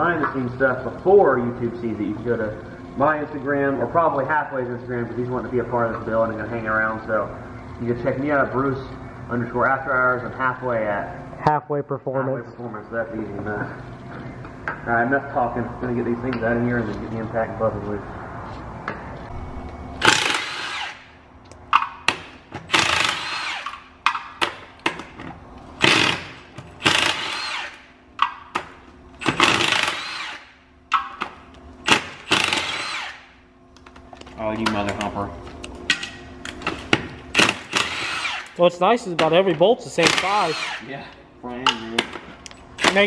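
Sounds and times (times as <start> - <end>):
impact wrench bursts: 20.0 - 21.2, 21.8 - 25.1, 25.8 - 33.4, 37.3 - 38.6, 39.9 - 40.9, 42.7 - 43.0.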